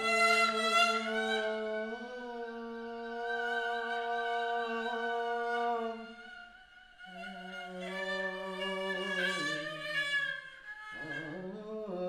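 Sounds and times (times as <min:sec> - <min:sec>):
bowed fiddle long note: 0:00.0 - 0:12.0.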